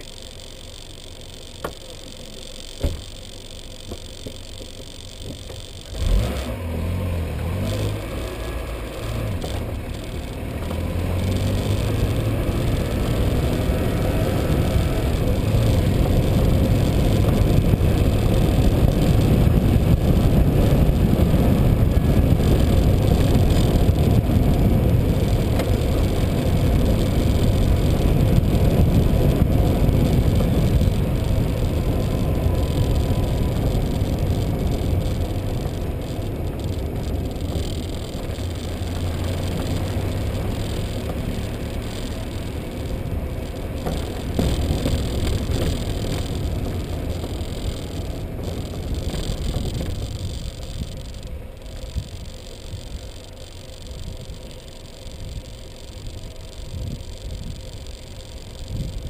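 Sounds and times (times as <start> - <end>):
vehicle road and wind noise: 0.0 - 59.0.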